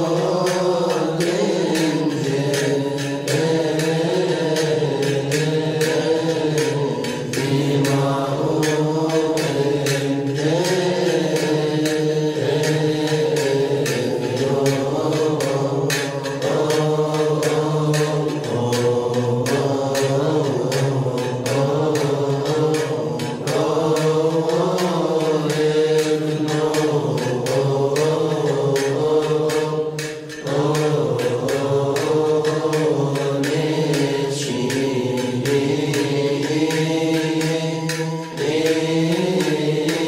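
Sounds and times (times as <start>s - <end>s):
men chanting in unison: 0.0s - 40.0s
sharp ticks: 0.0s - 40.0s.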